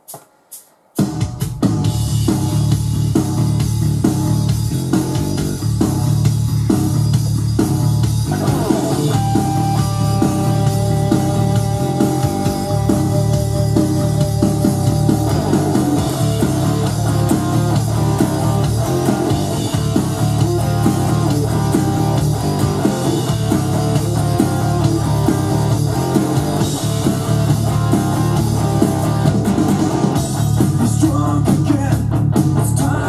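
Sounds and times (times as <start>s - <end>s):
drums: 0.0s - 33.0s
bass: 1.0s - 33.0s
electric guitar rock riff: 1.4s - 33.0s.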